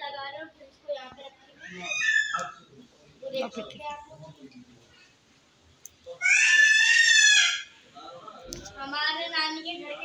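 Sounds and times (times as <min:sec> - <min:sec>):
child shrieking: 0:01.6 - 0:02.6, 0:06.2 - 0:07.8.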